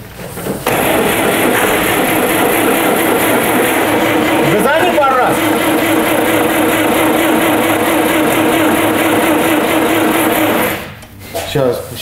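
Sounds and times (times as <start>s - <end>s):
starter motor cranking engine: 0.7s - 11.0s.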